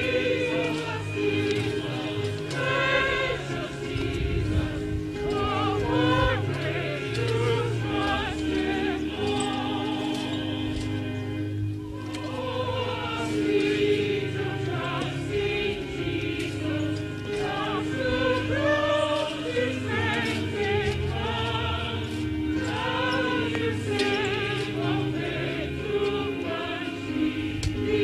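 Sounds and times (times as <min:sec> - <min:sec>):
choir singing a hymn: 0:00.0 - 0:28.0.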